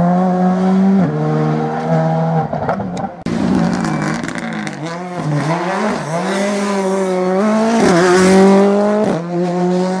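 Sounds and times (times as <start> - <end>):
rally car engine revving high: 0.0 - 10.0.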